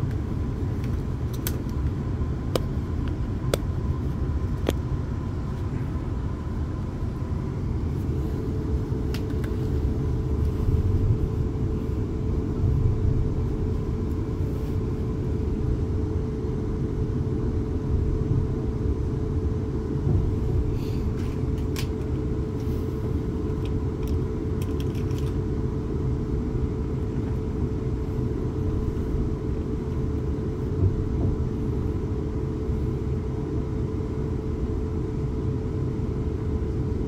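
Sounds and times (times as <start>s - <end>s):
steady hum: 0.0s - 37.0s
train wheels rumbling on track: 30.6s - 31.9s.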